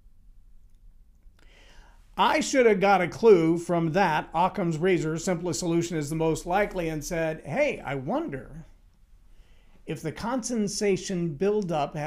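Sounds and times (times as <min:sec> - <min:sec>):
man drawing a short breath: 0:01.4 - 0:02.2, 0:09.2 - 0:09.8.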